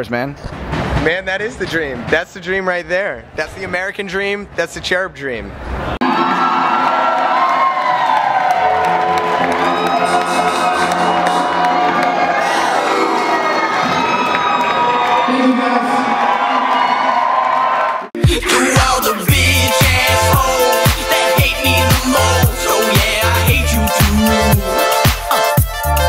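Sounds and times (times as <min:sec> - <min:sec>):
concert crowd cheering and screaming: 0:06.0 - 0:18.1
electro-pop band music with heavy bass: 0:18.2 - 0:26.0.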